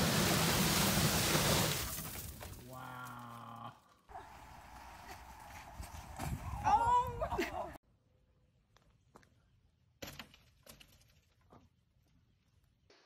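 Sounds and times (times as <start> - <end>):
snow sliding off roof: 0.0 - 2.5.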